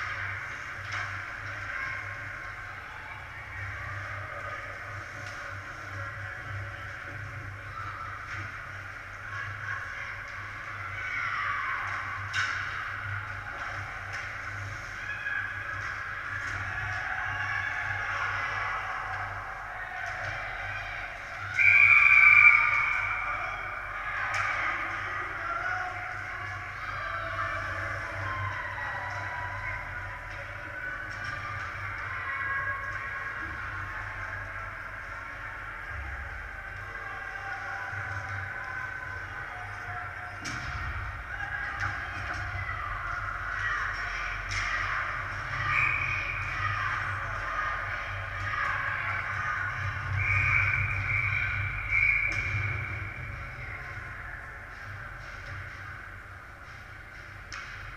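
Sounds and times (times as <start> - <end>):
hockey sticks clacking: 0.0 - 10.9, 11.8 - 57.9
echoing voices calling out: 0.0 - 57.9.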